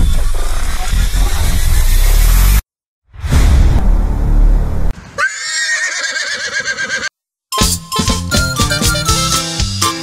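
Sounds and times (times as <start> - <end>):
horse whinny: 5.2 - 7.1.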